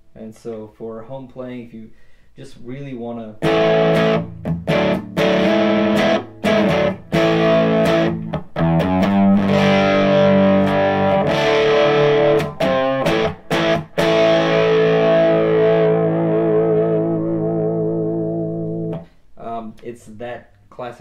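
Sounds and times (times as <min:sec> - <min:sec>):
overdriven electric guitar chords: 0:03.4 - 0:19.2.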